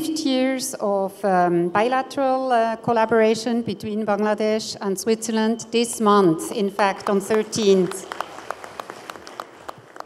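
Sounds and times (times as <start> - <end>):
audience applause: 7.9 - 10.0.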